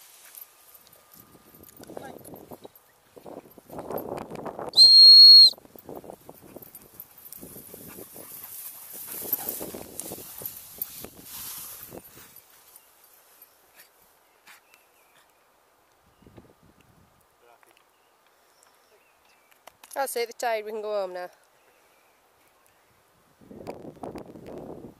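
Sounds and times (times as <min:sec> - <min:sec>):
dogs running through long grass: 0:00.0 - 0:01.6, 0:05.6 - 0:13.9
handheld whistle blast: 0:04.7 - 0:05.6.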